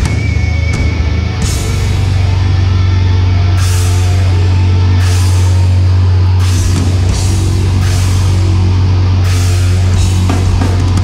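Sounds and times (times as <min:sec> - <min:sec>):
distorted guitars and bass: 0:00.0 - 0:11.0
rapid kick drumming and cymbals: 0:00.0 - 0:11.0.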